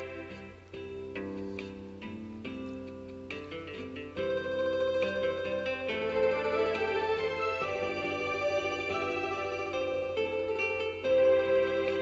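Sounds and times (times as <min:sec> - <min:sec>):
instrumental backing music chords: 0:00.0 - 0:12.0.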